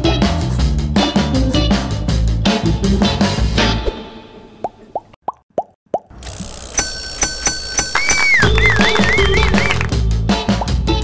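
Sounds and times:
background music: 0:00.0 - 0:04.8, 0:08.0 - 0:11.0
wavering whistle-like tone: 0:07.8 - 0:09.9.

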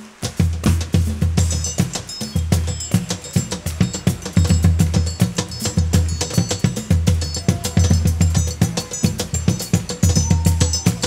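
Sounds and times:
high metallic ticking and ringing: 0:01.4 - 0:11.0.

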